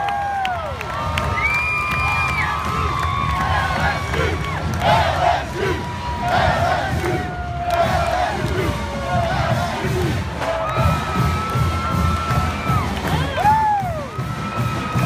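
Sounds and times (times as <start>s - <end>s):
crowd cheering and shouting: 0.0s - 15.0s
faint marching band: 0.0s - 15.0s.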